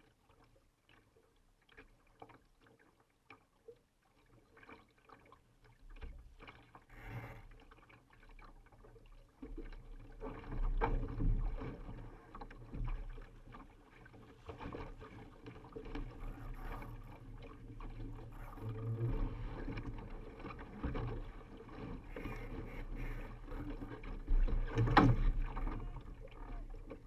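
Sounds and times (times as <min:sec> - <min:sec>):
water rushing along boat hull: 0:00.0 - 0:27.0.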